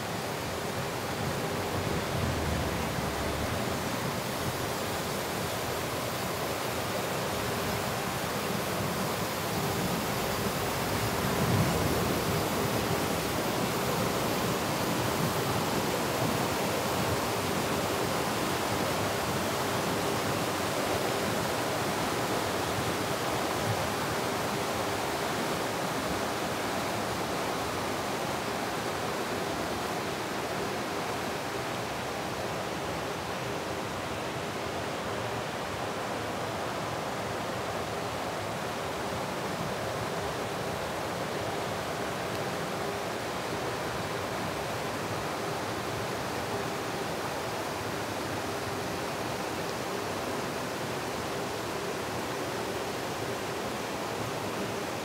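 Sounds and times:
stream rushing over rocks: 0.0 - 55.0.

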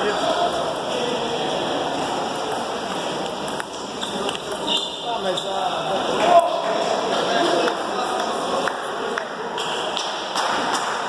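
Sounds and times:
echoing voices and chatter: 0.0 - 11.0.

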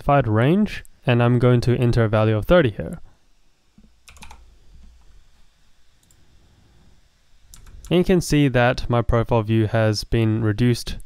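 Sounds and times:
faint low hum: 0.0 - 11.0
sharp clicks: 4.0 - 4.4, 7.5 - 8.0
computer keyboard keystrokes: 4.1 - 4.4, 7.5 - 8.0.

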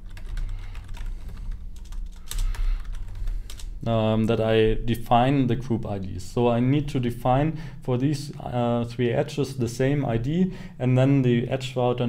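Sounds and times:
computer keyboard typing: 0.0 - 3.8.

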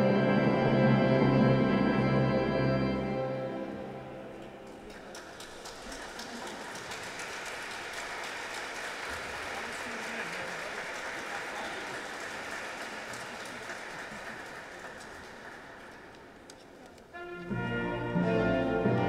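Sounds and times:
music: 0.0 - 4.8, 17.1 - 19.0
congregation applauding: 4.3 - 16.8.

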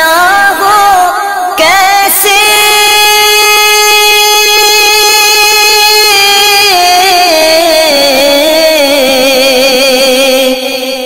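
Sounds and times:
high voice singing long note: 0.0 - 11.0.

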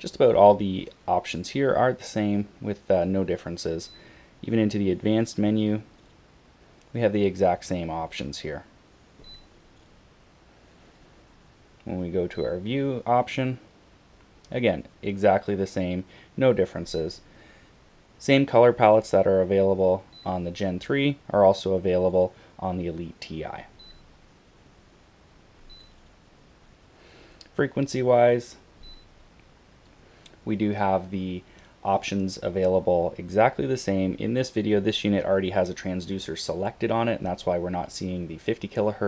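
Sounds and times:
high electronic key beep: 9.2 - 9.6, 12.3 - 12.6.

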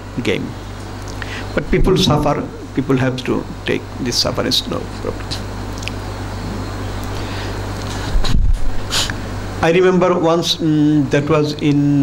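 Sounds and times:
low hum and hiss: 0.0 - 12.0
thump on microphone: 1.8 - 2.4.

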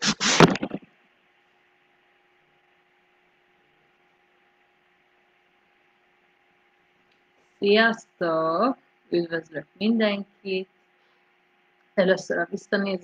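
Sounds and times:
hand rubbing microphone: 0.0 - 0.8
faint electrical hum: 0.0 - 13.0.

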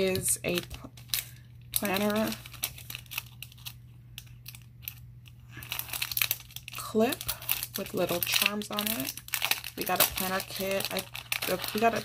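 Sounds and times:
paper packet crinkling: 0.0 - 12.0.

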